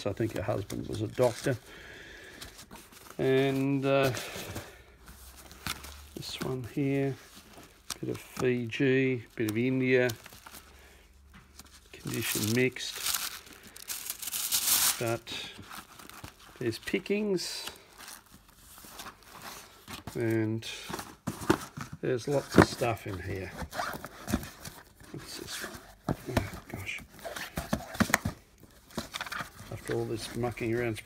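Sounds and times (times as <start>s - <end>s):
album pages rustling: 0.0s - 31.0s
paper crackle: 11.6s - 16.8s
boxes knocking and clicking: 20.9s - 23.4s, 25.6s - 28.4s.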